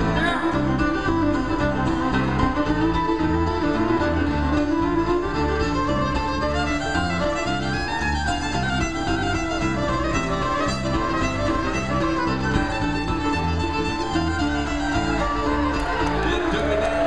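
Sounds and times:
acoustic guitar strumming: 0.0s - 17.0s
fiddle melody: 0.0s - 17.0s.

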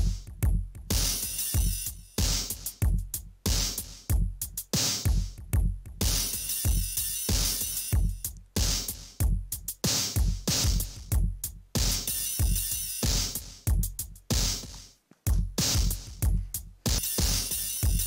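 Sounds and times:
electronic drum loop: 0.0s - 18.0s.

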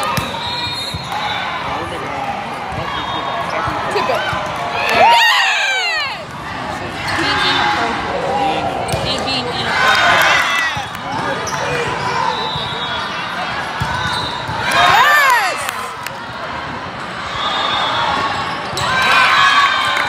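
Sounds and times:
players and spectators calling out: 0.0s - 20.0s.

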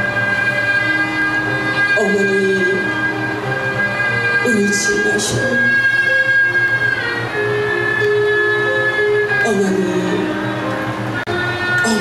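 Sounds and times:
low sustained accompaniment: 0.0s - 12.0s.

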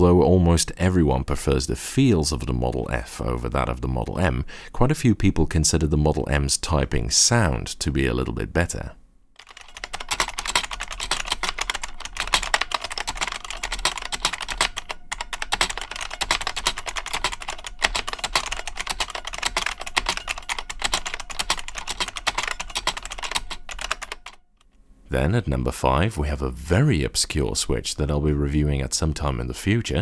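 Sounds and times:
fast typing on buckling-spring keyboard: 9.4s - 24.4s.

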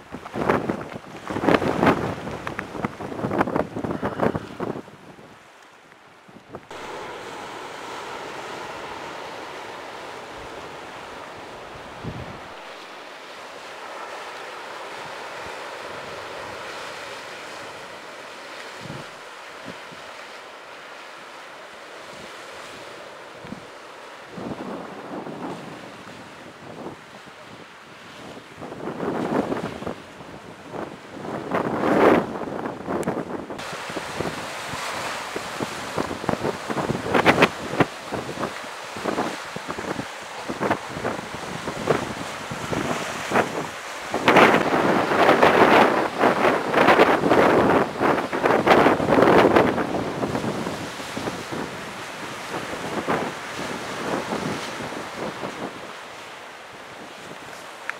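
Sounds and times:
wind buffeting microphone: 0.0s - 5.4s, 6.3s - 12.9s, 18.7s - 20.1s, 24.3s - 56.0s
sea surf on rocky shore: 0.0s - 57.9s.

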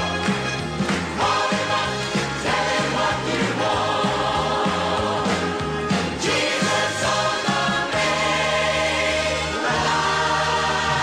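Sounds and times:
gospel choir singing: 1.0s - 11.0s.

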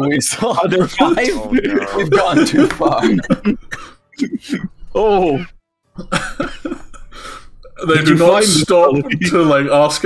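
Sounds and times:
people laughing: 0.0s - 5.4s, 6.0s - 10.0s.

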